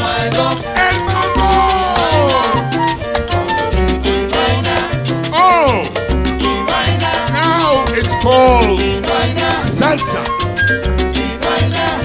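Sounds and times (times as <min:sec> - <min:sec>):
salsa band music: 0:00.0 - 0:12.0
swooping falling melody notes: 0:00.7 - 0:04.3, 0:06.4 - 0:11.1.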